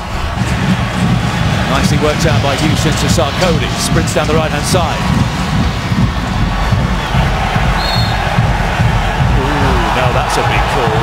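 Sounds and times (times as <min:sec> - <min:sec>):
stadium crowd din: 0:00.0 - 0:11.0
high whistle blast: 0:07.8 - 0:08.2.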